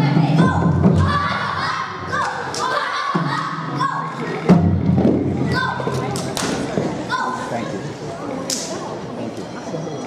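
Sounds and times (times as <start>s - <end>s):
children shouting together: 0.0s - 4.5s, 5.4s - 6.1s.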